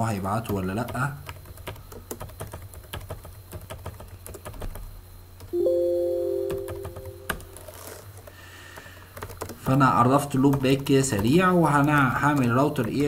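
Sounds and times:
typing on computer keyboard: 0.0s - 5.5s, 8.7s - 13.0s
loud steady ringing tone: 5.6s - 7.7s.

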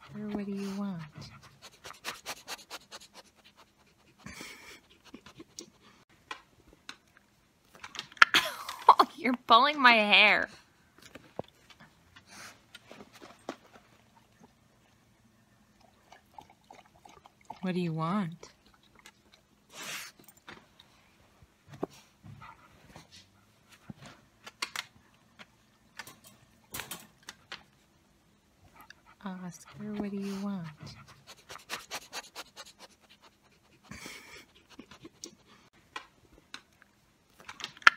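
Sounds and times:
dog breathing and snuffling: 0.0s - 6.0s, 28.7s - 35.7s.

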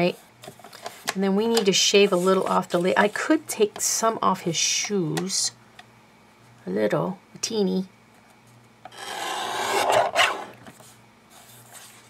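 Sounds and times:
paper trimmer blade rasping: 8.9s - 10.6s
faint paper rustle: 10.7s - 12.0s.

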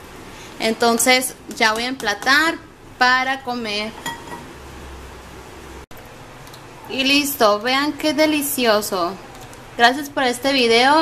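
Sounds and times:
kitchenware clinking: 3.9s - 4.5s.

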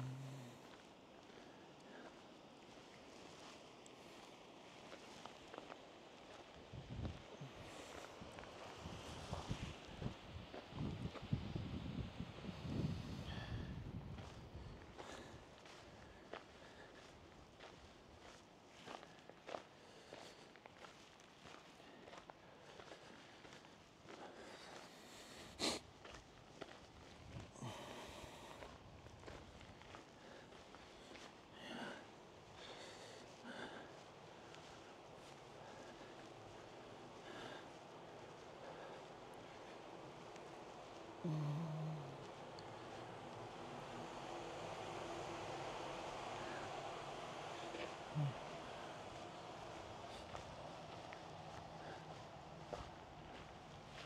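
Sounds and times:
faint low steady hum: 0.0s - 19.0s
footsteps on gravel: 50.1s - 54.0s.

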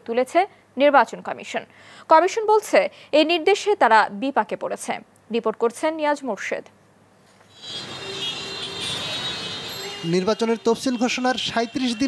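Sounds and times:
city road traffic: 7.4s - 12.0s.

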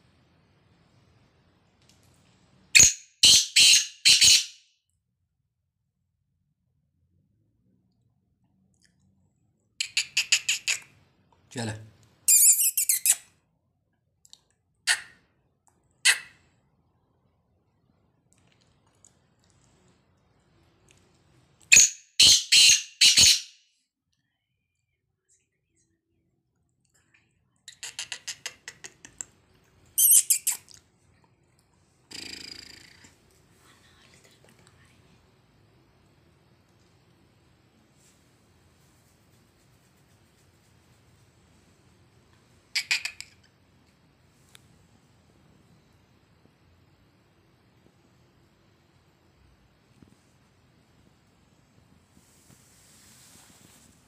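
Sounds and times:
bird harsh high-pitched call: 2.8s - 4.6s, 21.7s - 23.5s.

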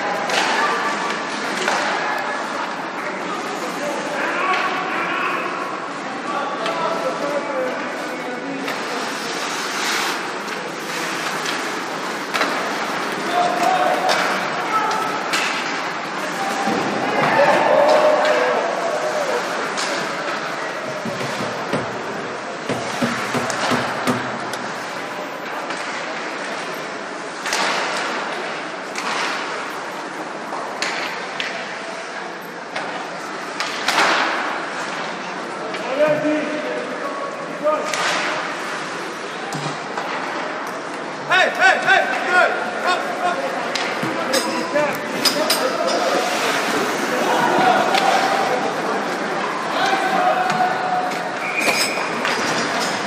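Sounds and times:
crowd noise: 0.0s - 53.0s.

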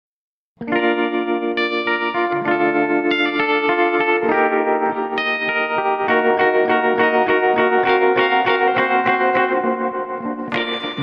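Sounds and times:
electric guitar ringing chords: 0.6s - 11.0s.

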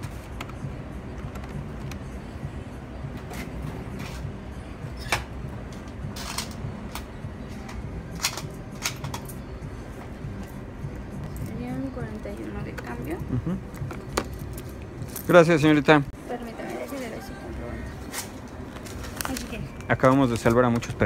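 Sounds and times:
steady low hum: 0.0s - 20.1s.

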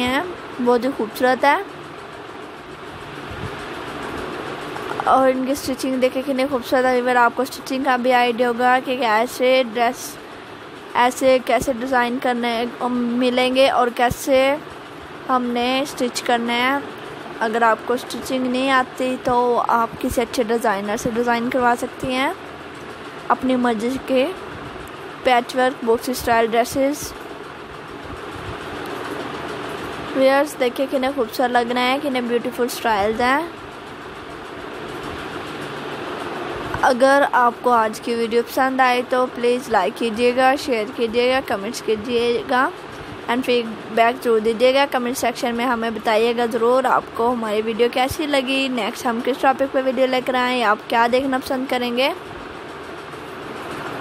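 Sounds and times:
steady background hiss: 0.0s - 54.0s.

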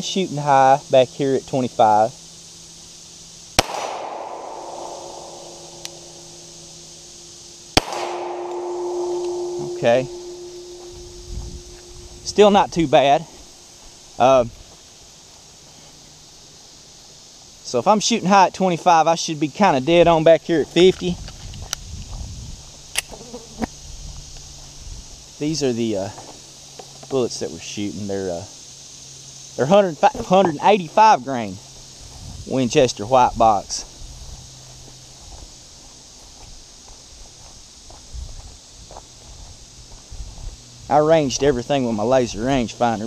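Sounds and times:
sharp clicks: 3.6s - 6.0s
pistol shots with echo: 3.6s - 6.4s, 7.8s - 12.0s
low rumble on microphone: 8.3s - 13.5s
footsteps on grassy dirt track: 9.2s - 15.4s, 20.4s - 22.9s, 24.2s - 25.2s, 31.5s - 32.5s, 33.9s - 40.7s.

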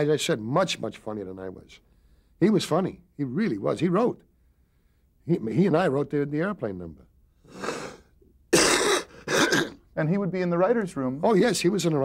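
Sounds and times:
man coughing: 8.5s - 9.9s.

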